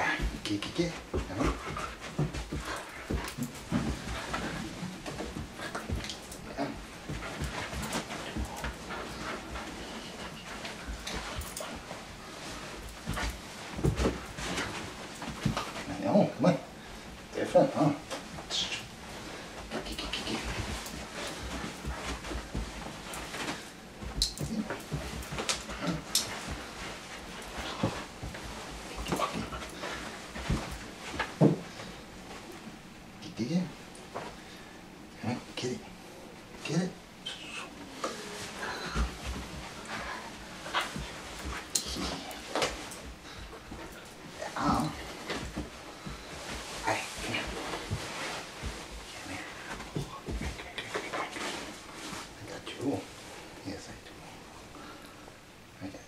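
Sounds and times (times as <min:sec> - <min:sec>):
dog panting: 0:01.1 - 0:14.7.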